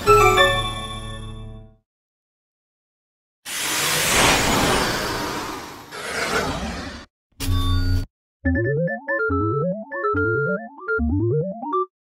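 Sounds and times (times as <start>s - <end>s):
synthesizer phone startup jingle: 8.4s - 11.9s.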